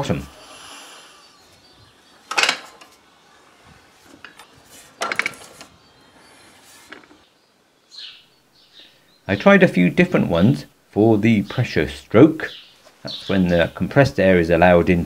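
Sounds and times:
faint background noise: 0.0s - 15.0s.

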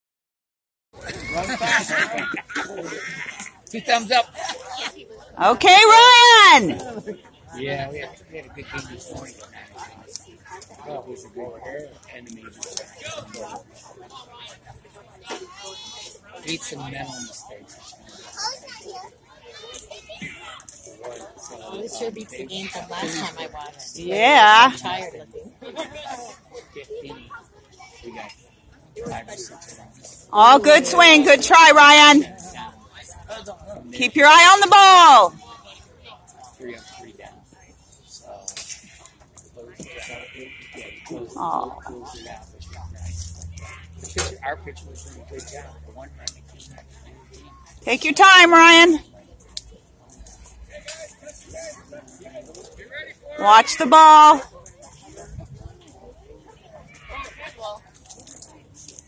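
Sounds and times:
children calling and chattering: 1.0s - 59.0s
people talking: 29.0s - 35.3s, 39.7s - 49.0s, 50.7s - 58.6s.

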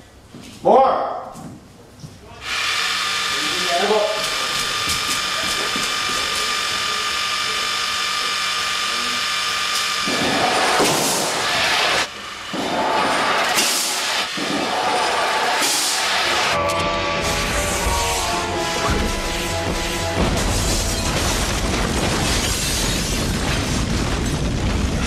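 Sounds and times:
rocket high whine and hiss: 2.4s - 25.0s
loud rushing swells: 10.2s - 25.0s.

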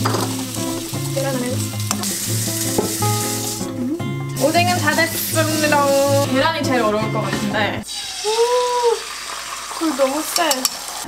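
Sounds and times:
egg sizzling in a frying pan: 0.0s - 6.4s, 7.8s - 11.0s.

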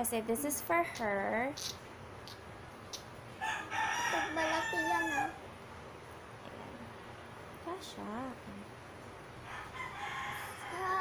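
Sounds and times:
rooster crowing: 3.4s - 5.4s, 9.4s - 11.0s.

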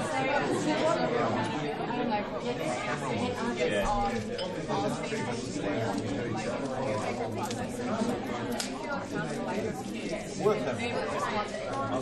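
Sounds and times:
hubbub of chatter: 0.0s - 12.0s.

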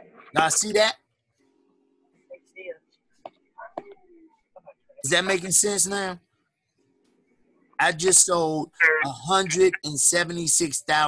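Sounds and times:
faint murmuring voices: 1.9s - 5.1s.

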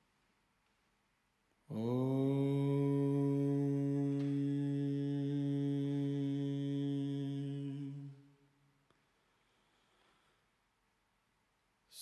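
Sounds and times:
man chanting a long note: 1.7s - 8.2s.

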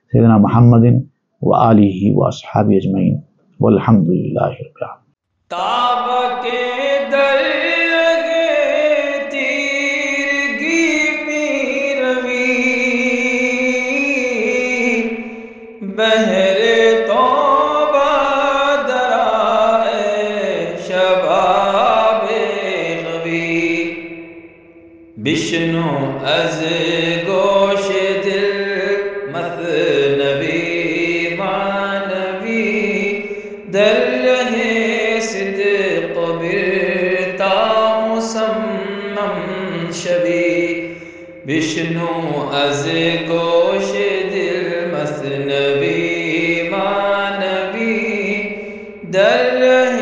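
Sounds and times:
solo voice chanting: 0.0s - 50.0s.

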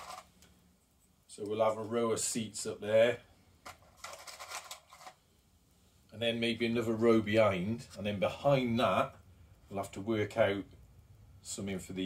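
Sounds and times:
plastic pieces clicking in container: 0.0s - 0.3s, 3.7s - 5.2s.

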